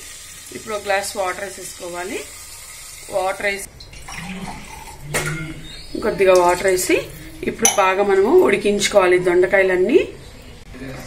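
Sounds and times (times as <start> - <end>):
woman speaking: 6.0 - 10.2
metal utensil clinking on pot: 7.6 - 8.2.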